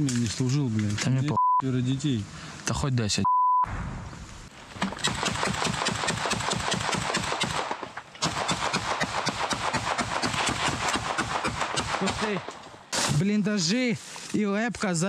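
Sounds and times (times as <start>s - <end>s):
rapid automatic gunfire: 4.8s - 12.5s.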